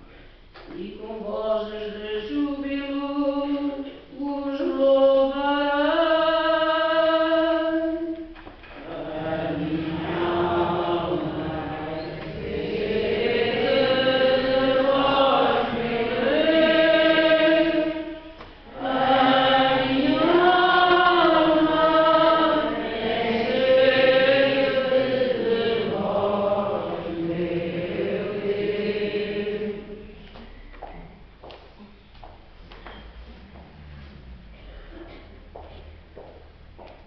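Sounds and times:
voices singing slow chant: 1.0s - 30.5s.

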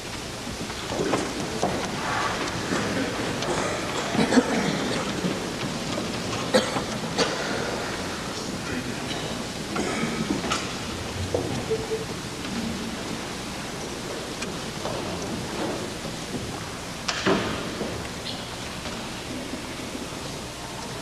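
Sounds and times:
steady hiss: 0.0s - 21.0s.

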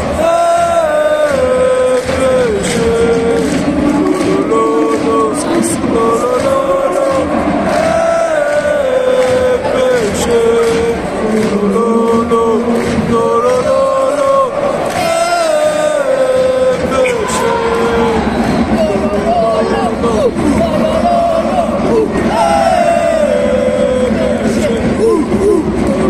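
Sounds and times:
crowd noise: 0.0s - 26.0s
crowd singing chant in unison: 0.0s - 26.0s.

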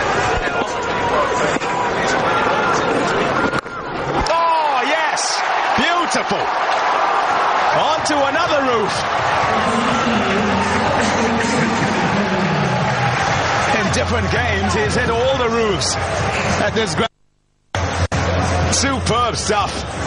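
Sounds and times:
crowd cheering and shouting: 0.0s - 17.1s, 17.8s - 20.0s.

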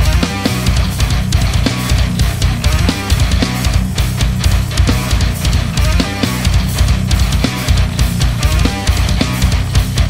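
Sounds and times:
distorted electric guitars: 0.0s - 10.0s
fast kick drums: 0.0s - 10.0s
thrash metal band playing: 0.0s - 10.0s.

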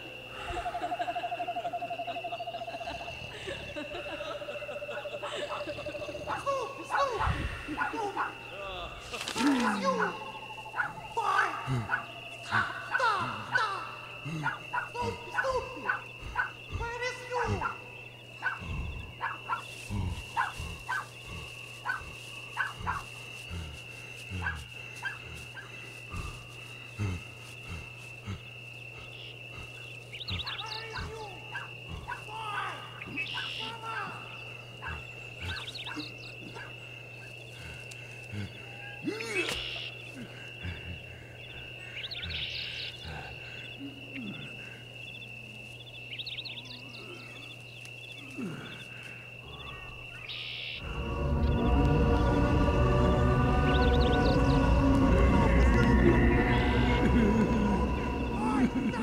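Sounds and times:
high whine: 50.8s - 59.0s
low hum: 50.8s - 59.0s.

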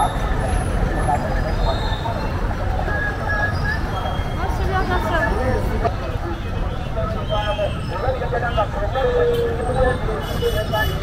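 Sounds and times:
motor traffic rumble: 0.0s - 11.0s.

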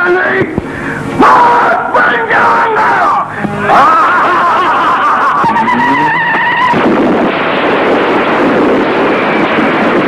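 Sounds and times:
man yelling: 1.2s - 6.5s.

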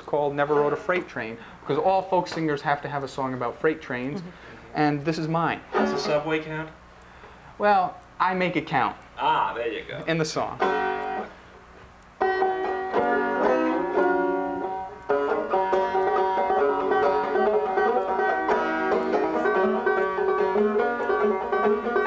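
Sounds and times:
banjo picking: 0.4s - 1.2s, 5.7s - 6.5s, 12.2s - 22.0s.

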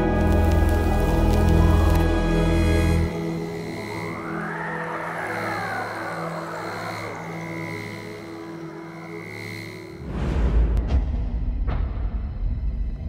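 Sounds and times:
ambient drone music: 0.0s - 13.0s.

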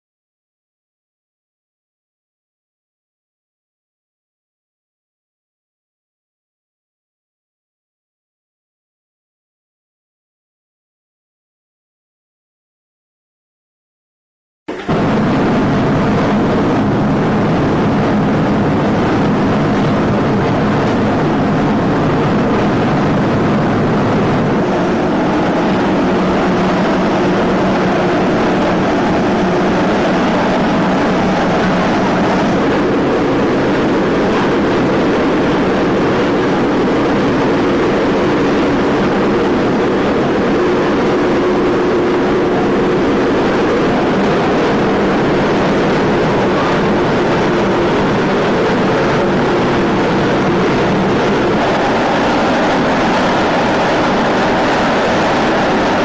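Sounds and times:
faint steady hum tones: 14.7s - 56.0s
gas burners roaring: 14.7s - 56.0s.

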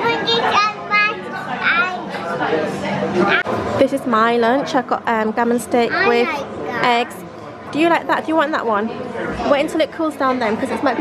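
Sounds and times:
background chatter: 0.0s - 11.0s.

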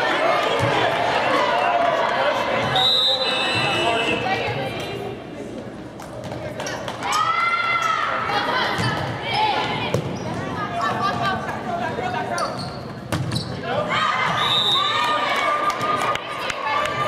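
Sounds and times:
crowd shouting and cheering: 0.0s - 4.7s, 7.0s - 12.3s, 13.6s - 17.0s.

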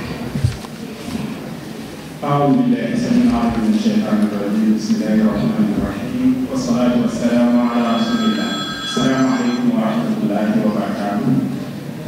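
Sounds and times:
microphone feedback ringing: 6.9s - 10.2s.

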